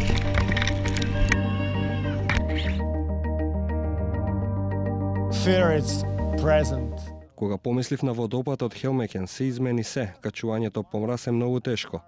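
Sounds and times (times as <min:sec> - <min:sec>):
background music: 0:00.0 - 0:07.6.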